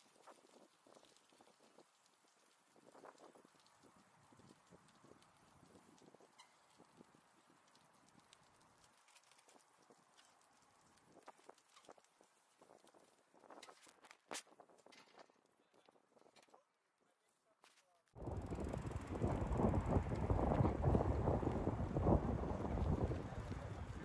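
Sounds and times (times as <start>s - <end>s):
bicycles ticking and rattling: 0.0s - 13.9s, 18.2s - 24.0s
bicycle clicks: 0.0s - 15.3s, 18.2s - 24.0s.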